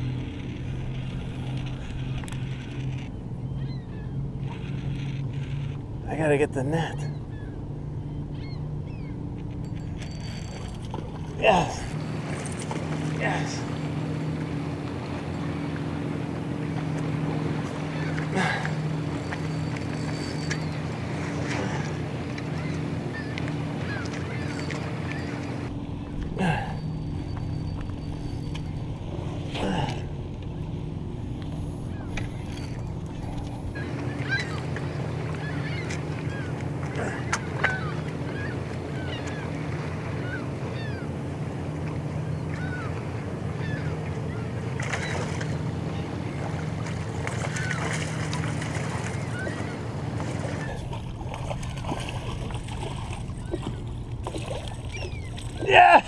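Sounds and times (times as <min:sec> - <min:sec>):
low motor hum: 0:00.0 - 0:56.0.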